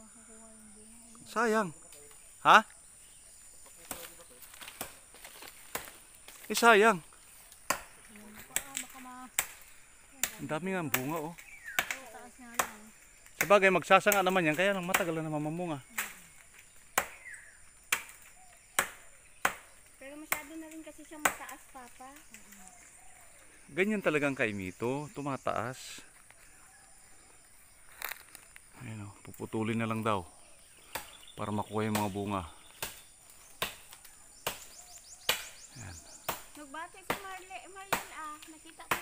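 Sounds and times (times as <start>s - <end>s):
blade chopping into branch: 3.8s - 6.4s, 7.6s - 12.8s, 16.9s - 21.6s, 31.9s - 35.6s, 36.2s - 39.0s.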